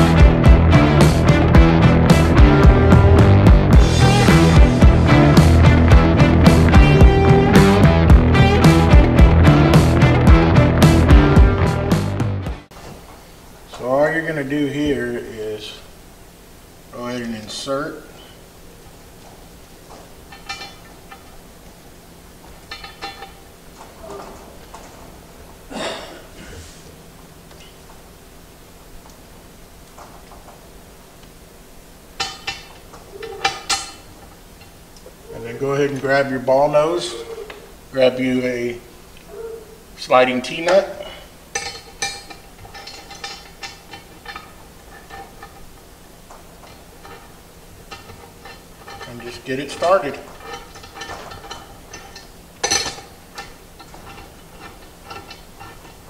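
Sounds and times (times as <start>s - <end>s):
steel fasteners clinking: 19.8s - 21.8s, 22.4s - 25.0s, 32.1s - 35.2s, 40.4s - 56.0s.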